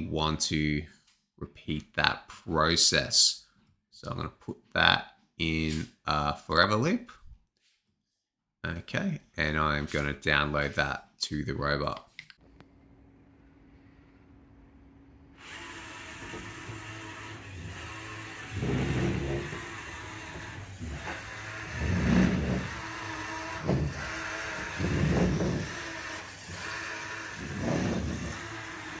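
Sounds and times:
toy robot electric motors whining: 15.4s - 29.0s.

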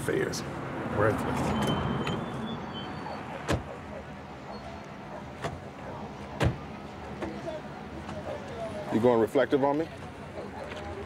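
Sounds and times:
low street background: 0.0s - 11.0s
car doors shutting: 1.4s - 3.8s, 6.3s - 7.4s.

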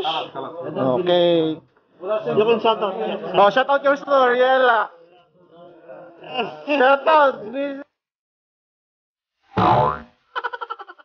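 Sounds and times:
comic boing sound effect: 9.6s - 10.2s.

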